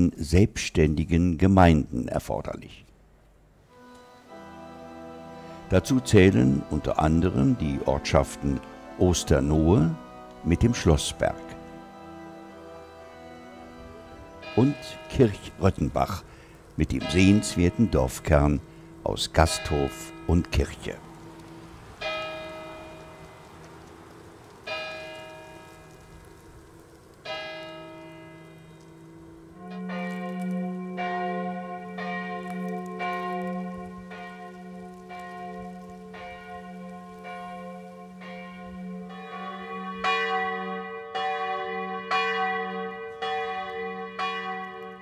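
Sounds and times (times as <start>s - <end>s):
church bells pealing: 3.7s - 45.0s.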